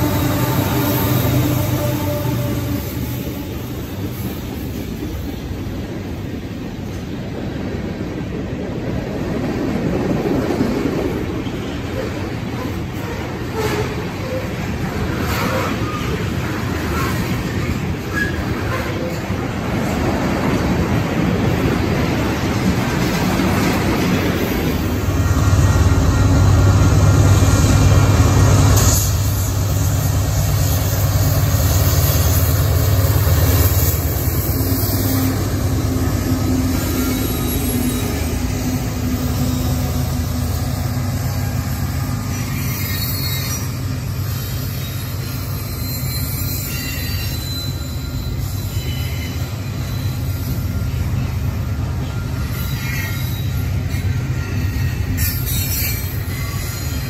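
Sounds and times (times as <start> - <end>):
diesel locomotive rumble: 0.0 - 57.0
rail car wheels rolling on track: 0.0 - 57.0.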